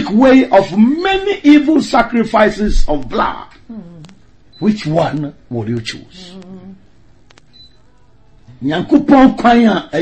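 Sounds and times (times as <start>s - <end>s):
man speaking: 4.6s - 6.4s.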